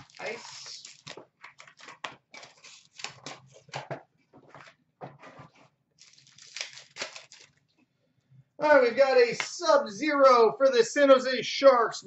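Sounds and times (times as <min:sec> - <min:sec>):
pack wrapper tearing: 0:00.0 - 0:03.5, 0:06.0 - 0:07.6
card packs crinkling and rustling: 0:00.0 - 0:04.8, 0:05.4 - 0:07.7.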